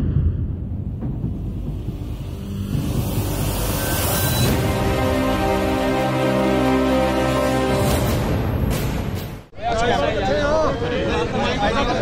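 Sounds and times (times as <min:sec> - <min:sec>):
deep low rumble: 0:00.0 - 0:03.6
theme music: 0:00.0 - 0:09.5.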